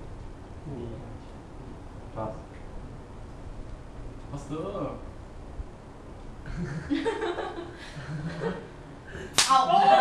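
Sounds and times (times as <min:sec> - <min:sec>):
hand slap: 0:09.3 - 0:09.7.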